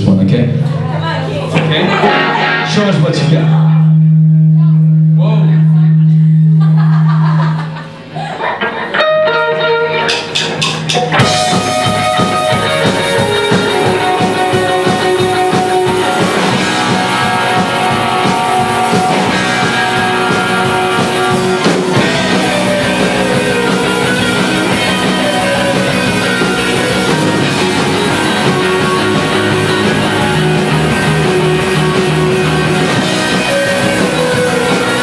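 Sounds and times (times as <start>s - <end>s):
rock band with drums and guitars: 0.0s - 35.0s
sparse guitar notes: 1.6s - 7.0s, 8.6s - 35.0s.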